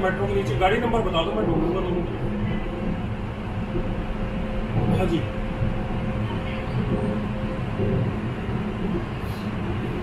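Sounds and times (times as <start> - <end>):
train car low rumble: 0.0 - 10.0.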